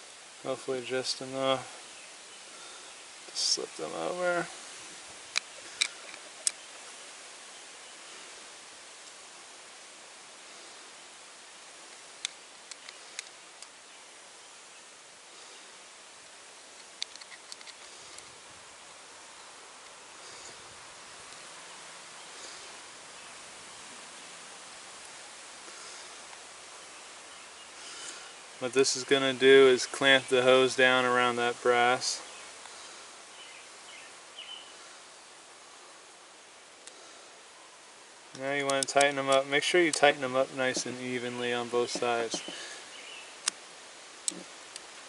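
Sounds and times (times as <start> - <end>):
steady background hiss: 0.0 - 45.0.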